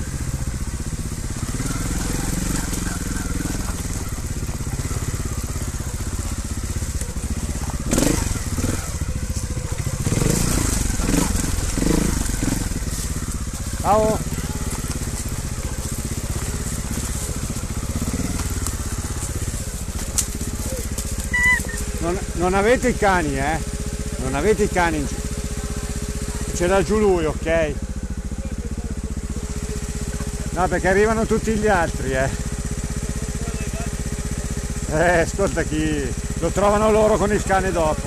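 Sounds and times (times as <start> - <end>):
motorcycle engine puttering: 0.0 - 38.0.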